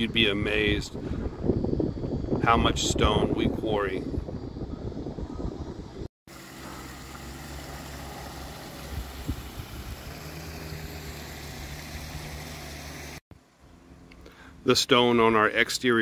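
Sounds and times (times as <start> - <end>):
low mechanical hum: 3.1 - 14.7.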